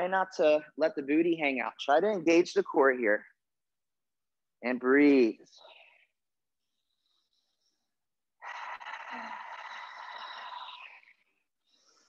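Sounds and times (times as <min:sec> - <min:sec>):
person breathing out: 0:06.8 - 0:12.0.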